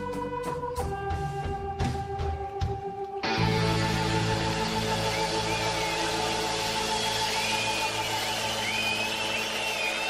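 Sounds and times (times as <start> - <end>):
live rock band sustained chord: 0.0 - 10.0.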